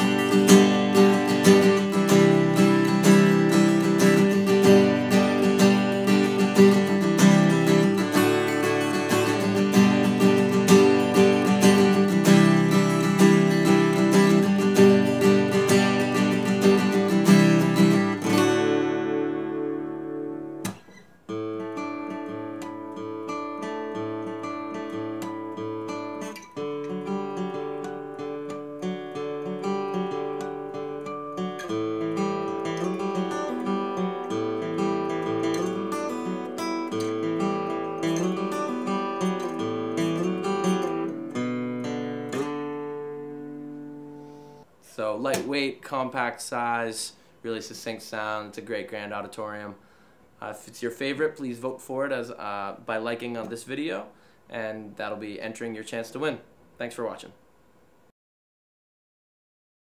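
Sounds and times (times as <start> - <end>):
guitar picked in single notes: 0.0 - 44.6
acoustic guitar strummed: 0.0 - 49.7.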